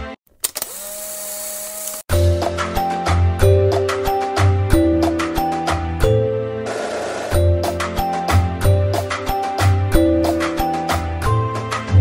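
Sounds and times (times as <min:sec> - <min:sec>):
electric motor humming: 0:00.5 - 0:02.1.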